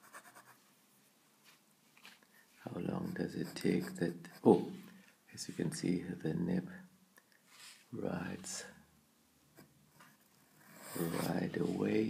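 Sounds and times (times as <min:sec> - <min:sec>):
pen nib scratching on paper: 0:03.0 - 0:04.6, 0:09.6 - 0:11.4.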